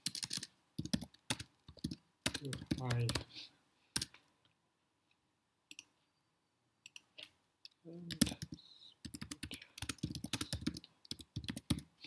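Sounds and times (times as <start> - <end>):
computer keyboard typing: 0.0 - 3.2, 4.0 - 4.2, 8.1 - 11.9.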